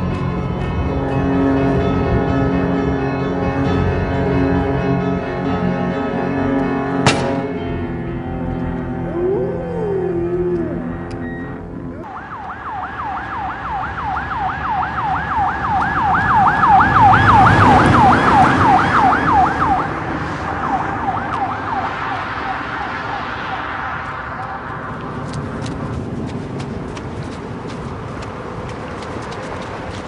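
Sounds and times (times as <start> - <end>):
music: 0.0 - 12.0
yelp emergency siren: 8.8 - 25.0.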